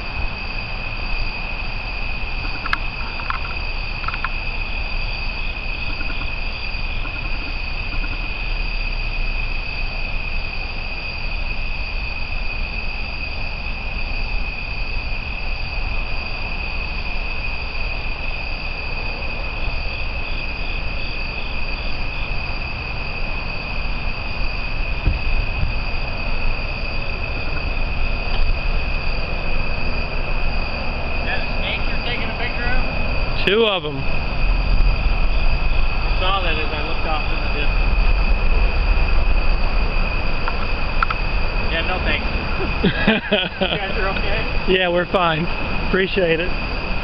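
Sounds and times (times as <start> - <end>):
insects droning: 0.0 - 47.0
pulsing insect call: 0.0 - 47.0
steady low rumble: 0.0 - 47.0.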